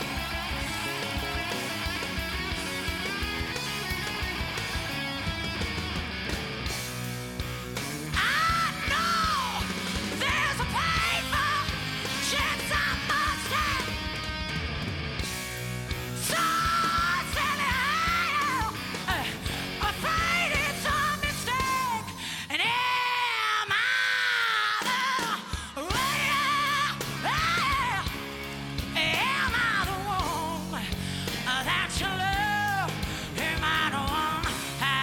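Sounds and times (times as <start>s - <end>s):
live rock band: 0.0s - 35.0s
woman singing rock vocal: 8.1s - 14.3s, 16.1s - 35.0s.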